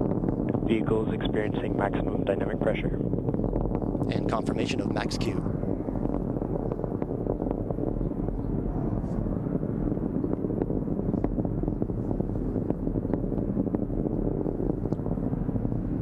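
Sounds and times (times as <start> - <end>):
distant rocket engine rumble: 0.0 - 16.0
sharp crackles: 0.0 - 16.0.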